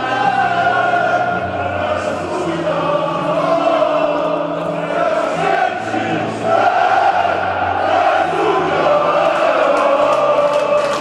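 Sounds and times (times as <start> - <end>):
choir-like singing in held notes: 0.0 - 11.0
music: 0.0 - 11.0.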